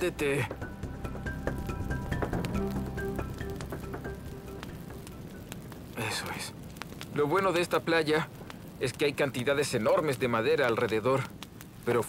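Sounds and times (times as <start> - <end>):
background music sustained notes: 0.0 - 7.0
fire crackling and snapping: 0.0 - 12.0.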